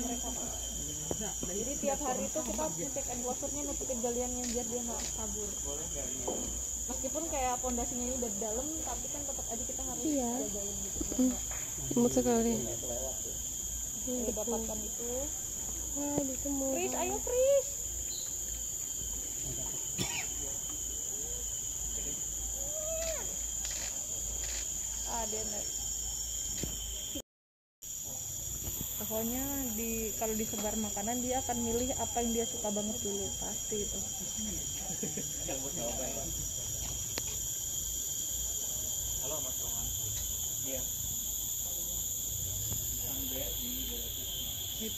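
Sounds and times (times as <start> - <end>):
chorus of forest insects: 0.0 - 27.2, 27.8 - 44.9.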